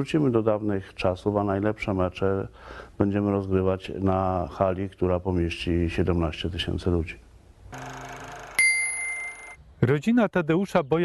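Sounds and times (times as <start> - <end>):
bright bell-like chime: 8.6 - 9.6.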